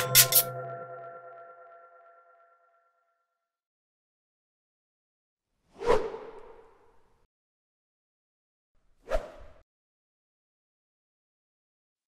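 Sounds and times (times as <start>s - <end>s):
ringing electronic chime: 0.0s - 2.8s.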